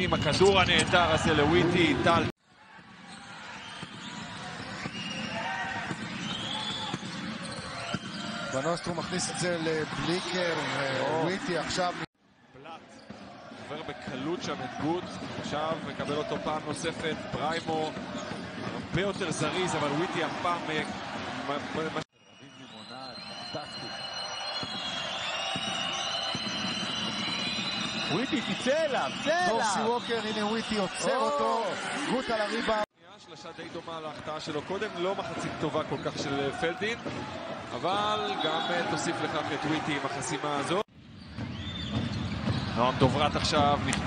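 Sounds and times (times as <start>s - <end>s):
arena crowd noise: 0.0s - 40.9s.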